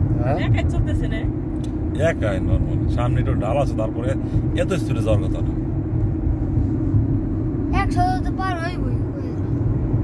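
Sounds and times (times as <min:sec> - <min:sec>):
car engine and road noise: 0:00.0 - 0:10.0
man talking: 0:02.0 - 0:05.6.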